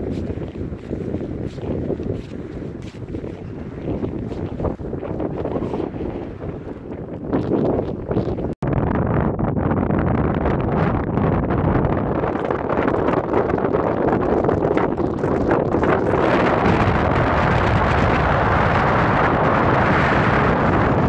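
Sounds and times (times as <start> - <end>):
wind blowing across microphone: 0.0 - 21.0.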